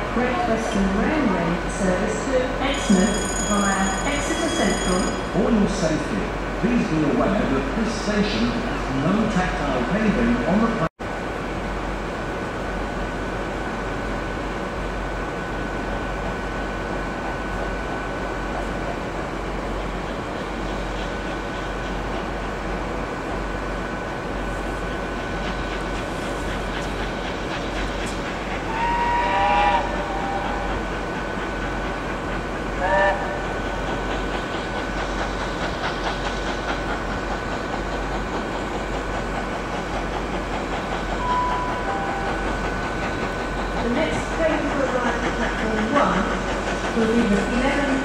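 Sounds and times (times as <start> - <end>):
steam locomotive rumbling on rails: 0.0 - 48.0
steam whistle blast: 28.7 - 30.7.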